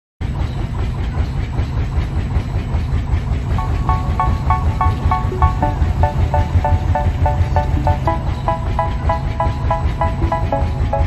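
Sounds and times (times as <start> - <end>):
music with repeating melody: 3.6 - 11.0.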